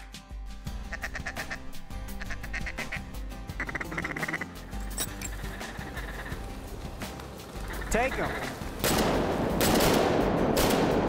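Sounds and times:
duck call quacks: 0:00.9 - 0:04.5, 0:07.7 - 0:08.5.

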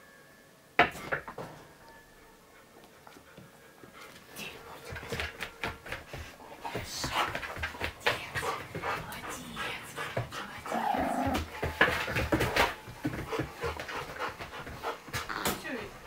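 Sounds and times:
dog panting: 0:02.6 - 0:16.0.

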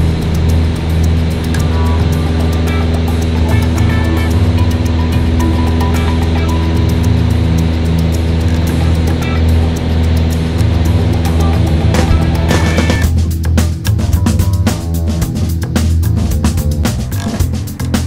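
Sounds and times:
aircraft engine droning: 0:00.0 - 0:18.0
background music: 0:00.0 - 0:18.0.

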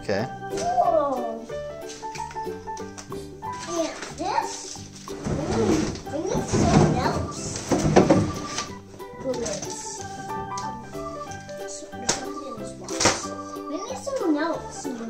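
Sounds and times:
background music: 0:00.0 - 0:15.0
plastic panel scraping cardboard: 0:05.1 - 0:10.6.

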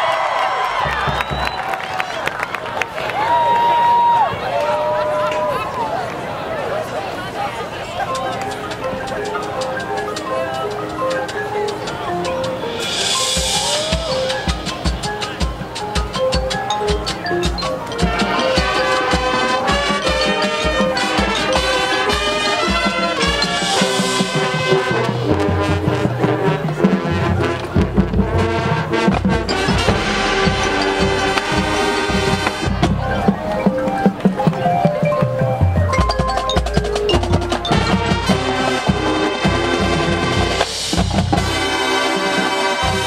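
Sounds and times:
marching band playing: 0:00.0 - 0:02.6, 0:07.7 - 0:43.0
steady drum pulse: 0:12.9 - 0:41.7.

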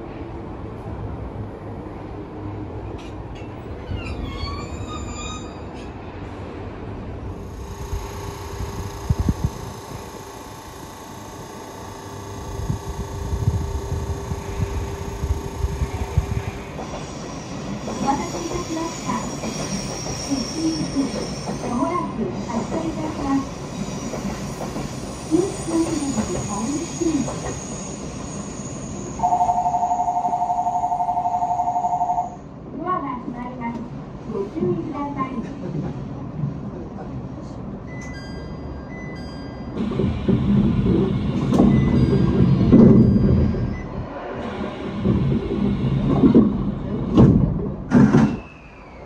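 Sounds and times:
train hum with hiss: 0:00.0 - 0:31.0, 0:31.9 - 0:49.0
train wheel squeal: 0:03.4 - 0:06.0, 0:15.0 - 0:29.6, 0:41.5 - 0:44.7, 0:48.2 - 0:49.0.

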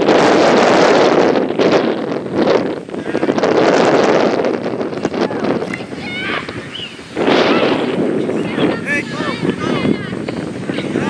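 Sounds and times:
wind buffeting microphone: 0:00.0 - 0:11.0
distant voices calling: 0:02.6 - 0:11.0.

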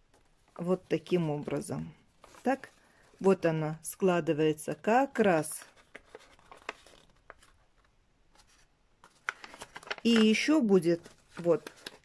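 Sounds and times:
paper rustling: 0:00.0 - 0:03.4, 0:05.2 - 0:12.0.

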